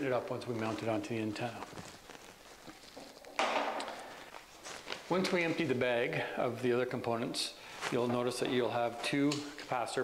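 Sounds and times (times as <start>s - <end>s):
plastic bag crinkling: 0.3s - 5.7s.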